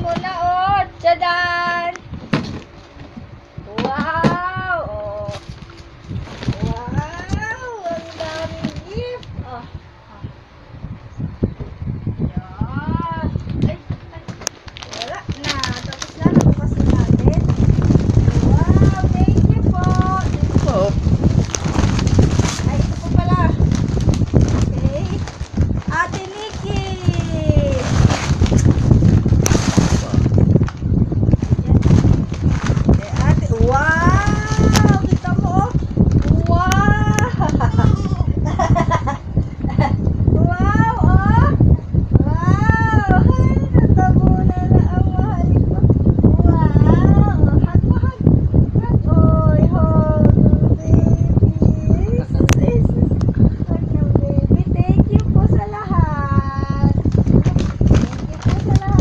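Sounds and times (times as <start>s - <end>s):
plastic knocks and rustling: 1.7s - 4.4s.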